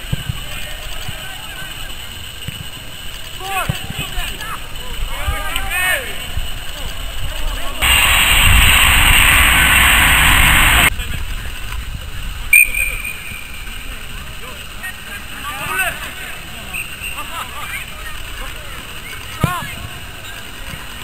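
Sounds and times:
loud rushing noise: 0:07.8 - 0:10.9
referee's whistle blast: 0:07.8 - 0:10.9, 0:12.5 - 0:13.8.

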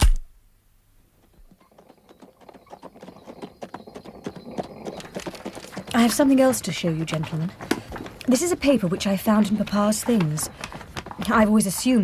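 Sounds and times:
horse hooves on street: 0:01.1 - 0:12.0.

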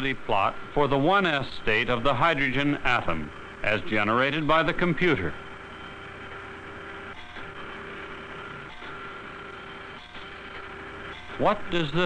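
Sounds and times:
plotter mechanical hum: 0:00.0 - 0:12.0.

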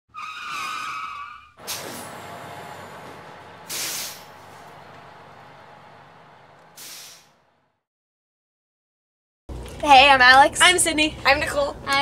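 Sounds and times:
tyre squeal: 0:00.1 - 0:02.1
steady vehicle noise: 0:01.6 - 0:07.8
short loud hiss: 0:03.7 - 0:04.4, 0:06.8 - 0:07.4.

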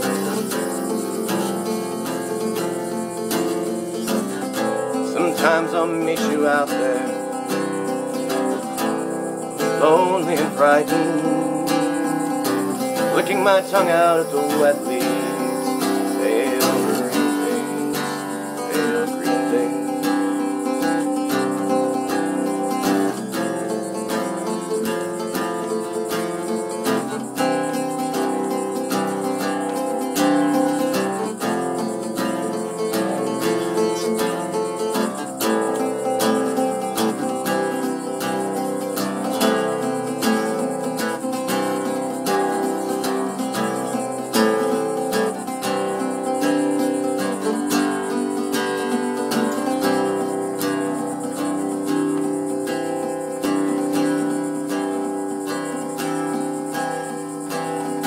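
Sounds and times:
mandocello strummed and picked: 0:00.0 - 0:58.0.

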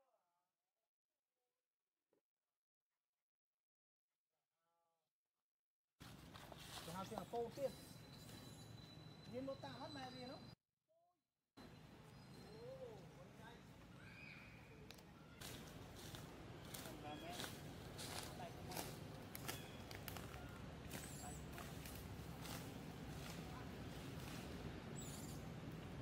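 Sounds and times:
dry leaves crackling and rustling: 0:06.0 - 0:07.2, 0:15.3 - 0:24.8
faint short squeaks: 0:06.9 - 0:10.6
low steady background hum: 0:11.6 - 0:26.0.

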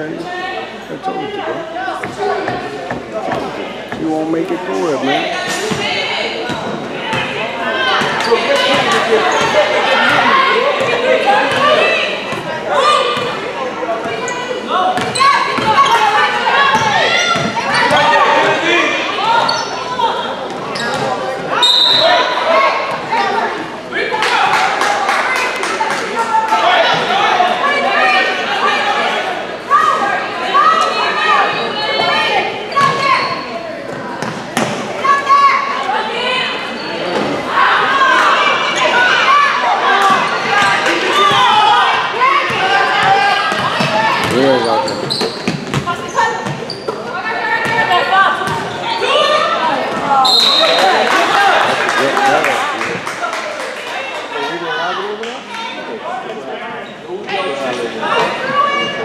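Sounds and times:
indistinct shouting and chatter: 0:00.0 - 0:59.0.

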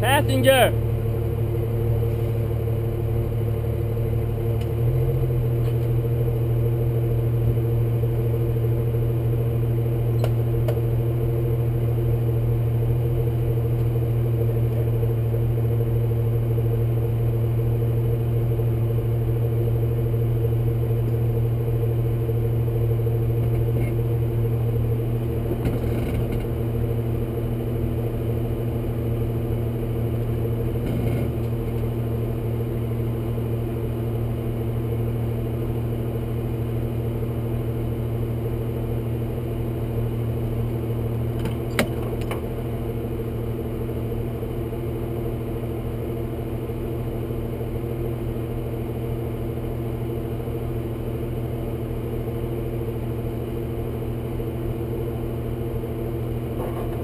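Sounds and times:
car engine idling: 0:00.0 - 0:57.0.

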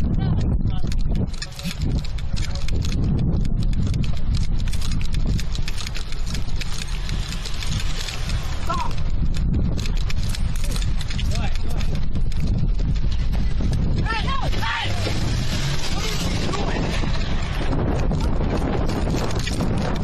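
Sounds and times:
running footsteps on asphalt: 0:00.0 - 0:20.0
wind buffeting microphone: 0:00.0 - 0:20.0
person shouting: 0:14.0 - 0:15.1.

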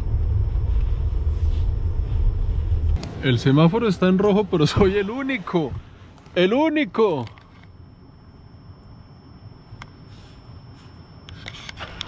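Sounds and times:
car engine and road noise: 0:00.0 - 0:06.4.

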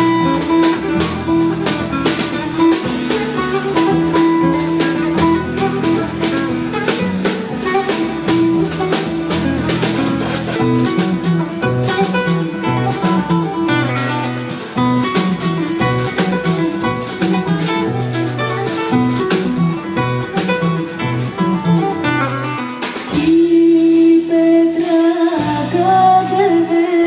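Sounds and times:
plucked lute melody: 0:00.0 - 0:23.8
drums: 0:00.0 - 0:27.0
woman singing long notes: 0:23.1 - 0:27.0.

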